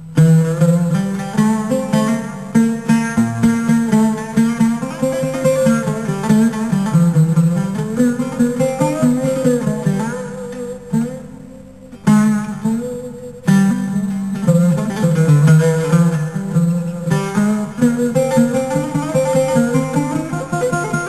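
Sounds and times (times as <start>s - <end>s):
plucked string melody: 0.0s - 21.0s.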